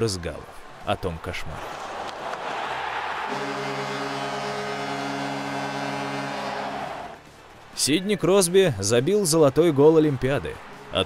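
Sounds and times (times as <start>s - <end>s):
crowd cheering: 0.0s - 11.0s
goal horn blast: 3.2s - 7.2s.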